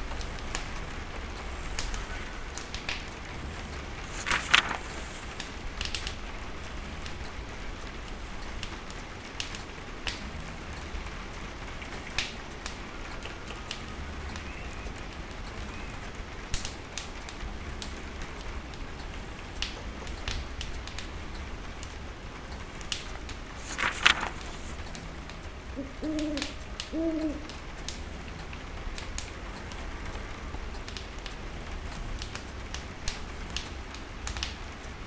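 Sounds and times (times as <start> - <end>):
rain hissing: 0.0 - 35.0
wood fire crackling in stove: 0.1 - 25.8, 27.5 - 35.0.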